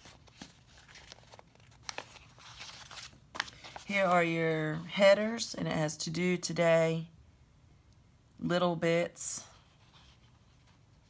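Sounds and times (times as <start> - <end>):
paper sheets rustling: 0.0 - 4.2.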